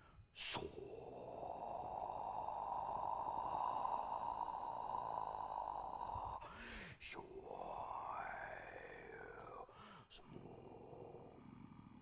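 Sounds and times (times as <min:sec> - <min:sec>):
man making mouth drone: 0:00.0 - 0:09.6.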